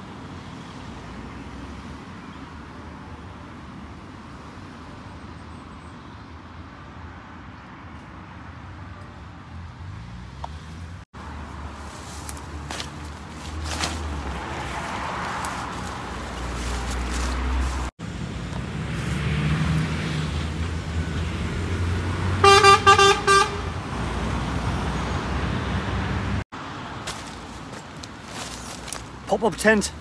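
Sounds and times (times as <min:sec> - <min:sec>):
road traffic rumble: 0:00.0 - 0:30.0
vehicle horn short toots: 0:22.4 - 0:23.7.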